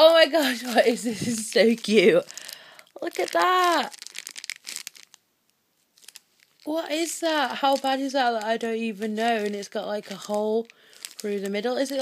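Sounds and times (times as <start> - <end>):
plastic bag crinkling: 0.0 - 5.2, 5.8 - 12.0.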